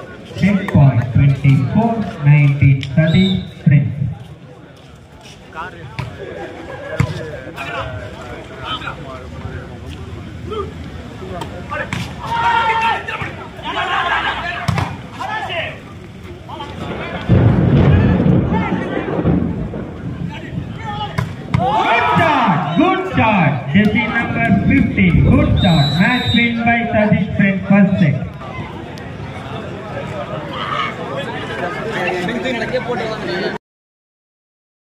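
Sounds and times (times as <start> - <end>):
crowd noise burst: 0.0 - 33.6
men shouting: 11.7 - 15.8, 20.8 - 27.0.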